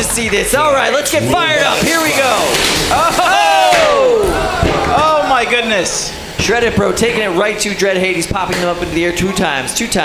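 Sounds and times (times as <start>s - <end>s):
man yelling excitedly: 1.1s - 6.0s.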